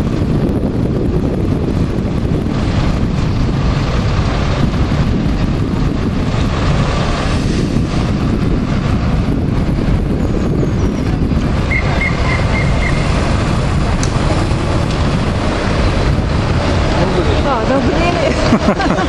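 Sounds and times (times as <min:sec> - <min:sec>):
street traffic rumble: 0:00.0 - 0:19.0
wind buffeting microphone: 0:00.0 - 0:19.0.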